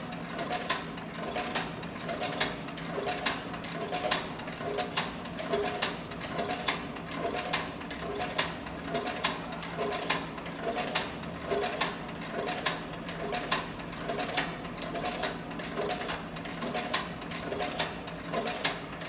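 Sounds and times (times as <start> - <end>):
sewing machine stitching leather: 0.1 - 19.0.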